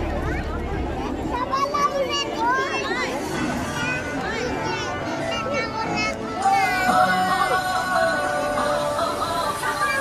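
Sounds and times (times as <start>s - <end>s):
crowd chatter: 0.0s - 10.0s.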